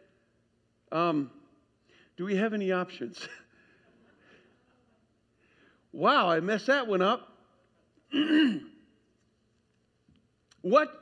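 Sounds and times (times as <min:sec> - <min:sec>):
man clearing his throat: 0:08.1 - 0:08.8.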